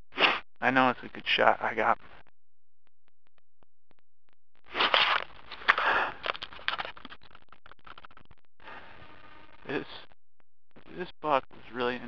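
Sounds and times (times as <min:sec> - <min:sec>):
sharp crackles: 0:04.6 - 0:12.0.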